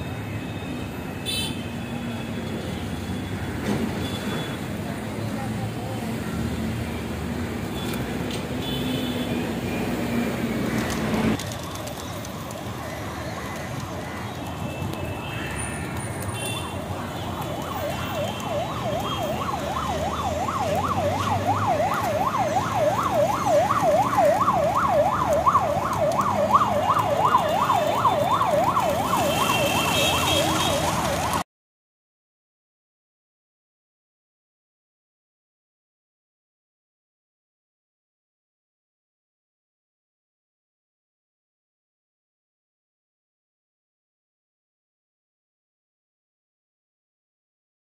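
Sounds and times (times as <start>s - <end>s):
street traffic rumble: 0.0s - 31.4s
siren yelping: 16.7s - 31.4s.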